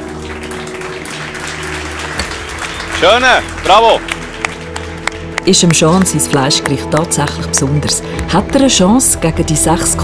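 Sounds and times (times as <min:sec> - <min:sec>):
audience applauding: 0:00.0 - 0:08.9
background music: 0:00.0 - 0:10.0.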